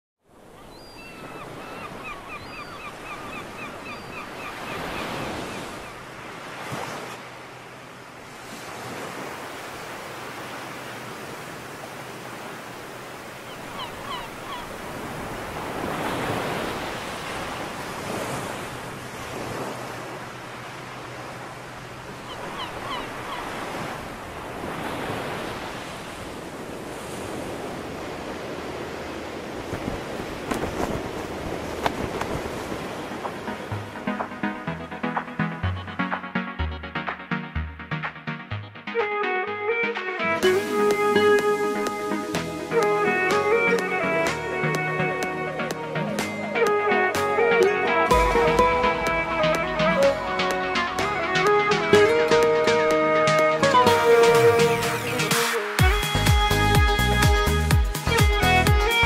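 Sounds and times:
wind: 0.2 - 59.0
sea waves washing ashore: 0.3 - 59.0
birds chirping: 0.4 - 6.2, 13.1 - 17.8, 22.0 - 24.2.

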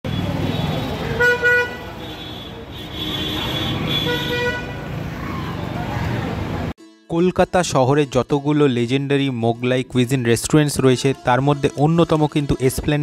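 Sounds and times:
traffic rumble: 0.0 - 6.7
vehicle horns honking: 0.1 - 5.0.

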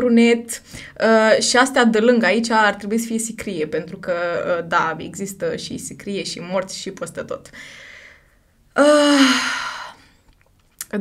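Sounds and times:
woman sighing: 8.8 - 10.1.

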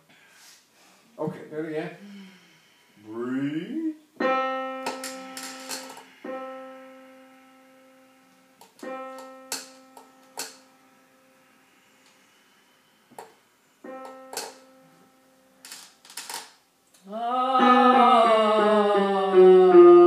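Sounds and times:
piano note ringing: 4.2 - 11.6, 13.8 - 15.6
person singing a sliding vowel: 17.0 - 20.0.

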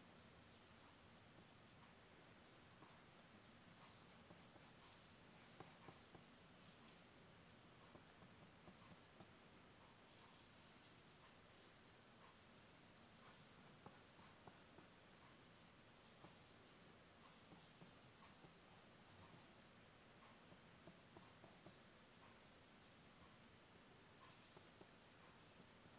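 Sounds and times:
pencil scratching on paper: 0.5 - 9.4, 12.3 - 25.9
light pencil ticks: 0.8 - 7.0, 7.7 - 9.4, 12.2 - 25.9.

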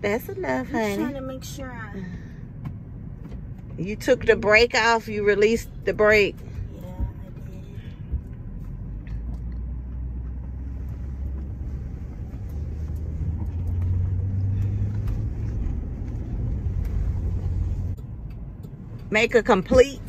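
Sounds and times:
truck engine drone: 0.0 - 20.0.

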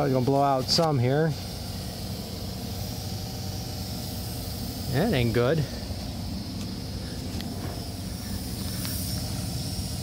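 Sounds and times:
faint hiss: 0.0 - 10.0
low mechanical hum: 0.0 - 10.0.

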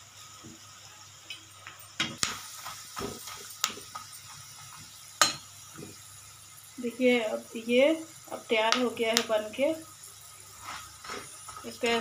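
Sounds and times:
peanuts sizzling in hot oil: 0.0 - 12.0
spoon knocking against pan: 5.2 - 6.0.

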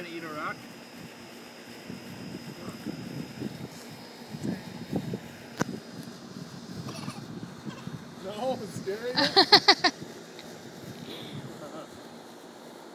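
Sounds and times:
air conditioner unit whirring: 0.0 - 12.9.

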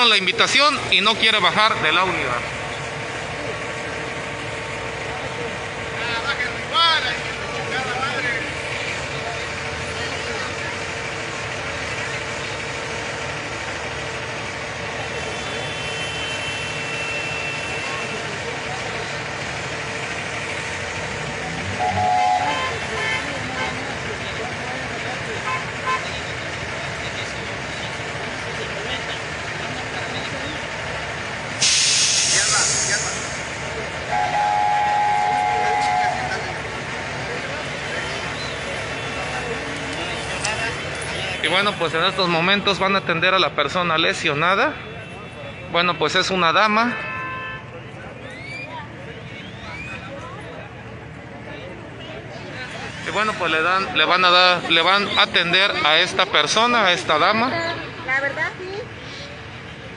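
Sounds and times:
truck engine idling: 0.0 - 43.2
air brake hiss: 31.6 - 33.5.

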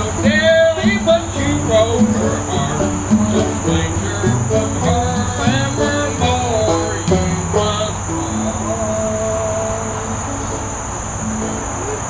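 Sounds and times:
crickets chirping: 0.0 - 12.0
string instruments held notes: 0.0 - 12.0.

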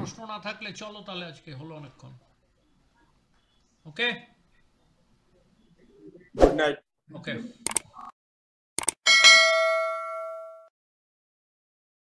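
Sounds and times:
mouse clicks: 7.7 - 7.9
bright bell ding: 9.1 - 10.7.

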